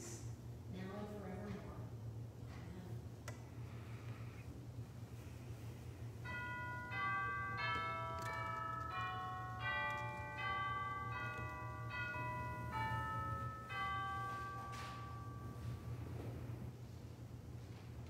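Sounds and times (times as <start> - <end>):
church organ sustained chords: 6.2 - 16.7.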